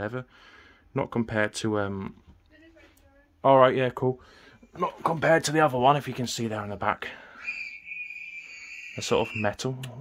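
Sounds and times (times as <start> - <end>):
pet bird whistling: 7.4 - 9.6.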